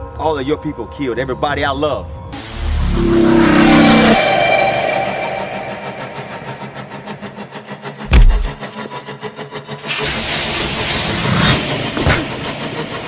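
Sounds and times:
rough pulsing rumble: 0:05.5 - 0:08.7
heavy boom: 0:08.1 - 0:08.6
energy surge: 0:08.1 - 0:08.7.

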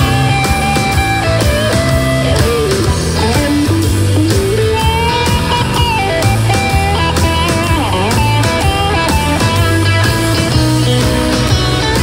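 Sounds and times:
bass: 0:00.0 - 0:12.0
drums: 0:00.0 - 0:12.0
lead electric guitar: 0:00.0 - 0:12.0.

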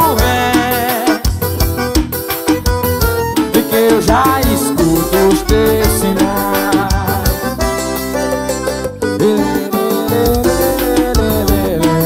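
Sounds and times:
drum beats: 0:00.0 - 0:08.2, 0:09.9 - 0:12.0
instrumental keyboard music: 0:00.0 - 0:12.0.

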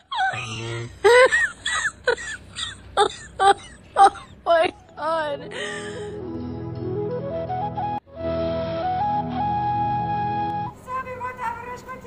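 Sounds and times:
woman wailing in grief: 0:00.0 - 0:06.1.

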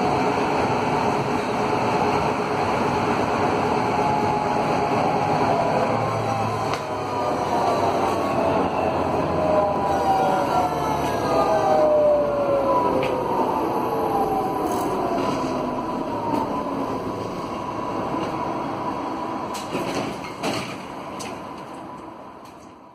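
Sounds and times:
tram motors whining: 0:00.0 - 0:22.5.

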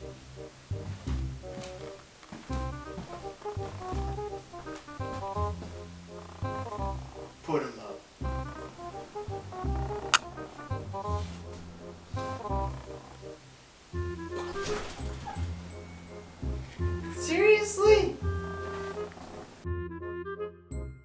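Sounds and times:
music with bass and keyboard notes: 0:00.0 - 0:21.0.

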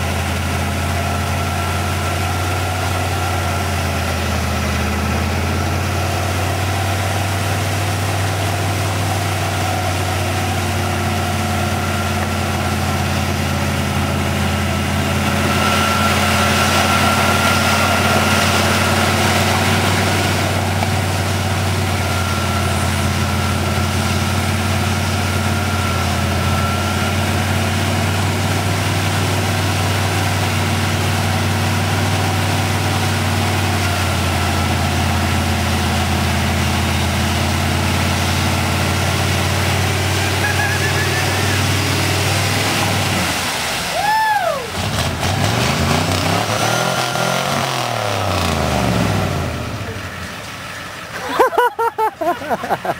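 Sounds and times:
truck engine idling: 0:00.0 - 0:52.9
thin high whine: 0:00.8 - 0:28.6.

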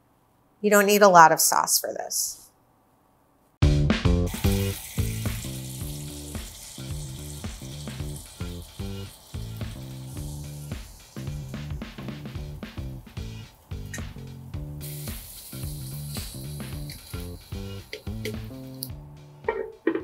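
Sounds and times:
light background music: 0:03.8 - 0:20.0
sauce sizzling in a skillet: 0:04.3 - 0:18.9.

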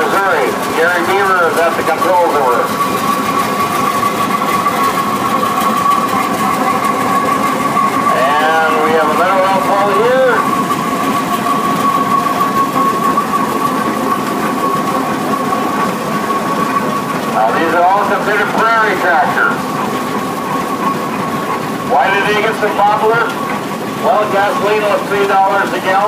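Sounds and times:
steady high whine: 0:00.0 - 0:26.0
tractor engines rumbling: 0:00.0 - 0:26.0
man's voice: 0:08.1 - 0:10.5, 0:21.9 - 0:23.4.

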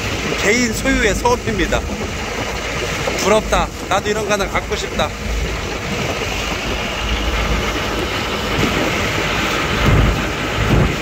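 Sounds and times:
boat engine running: 0:00.0 - 0:11.0
water rushing past hull: 0:00.0 - 0:11.0
wind buffeting microphone: 0:00.0 - 0:11.0.

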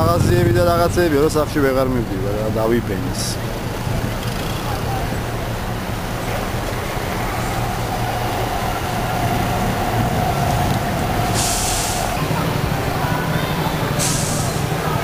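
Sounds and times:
rumble of city traffic: 0:00.0 - 0:15.0
steady whine: 0:00.0 - 0:15.0
short sharp hiss: 0:11.3 - 0:12.2, 0:14.0 - 0:14.7.

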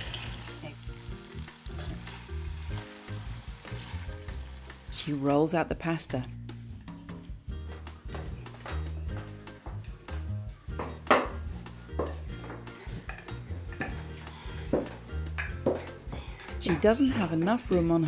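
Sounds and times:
background music with stepping bass: 0:06.1 - 0:18.0.

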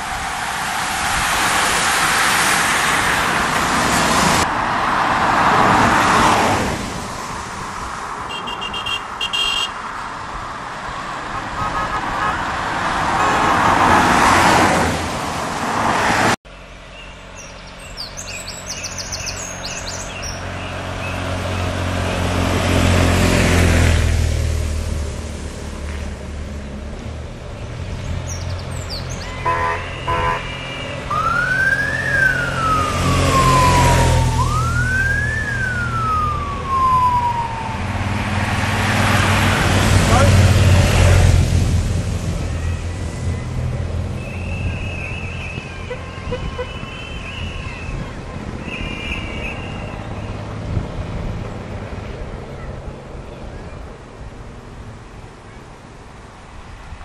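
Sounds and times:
cars and motorcycles driving past: 0:00.0 - 0:57.0
siren wailing: 0:29.8 - 0:38.7.

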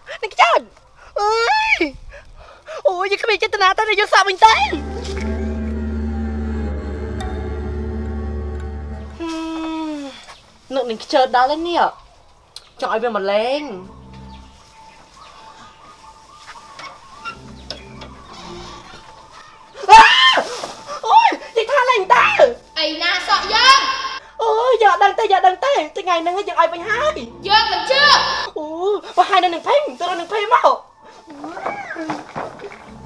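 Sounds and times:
people talking: 0:02.9 - 0:05.5, 0:21.0 - 0:30.8
low steady hum: 0:04.6 - 0:09.5.

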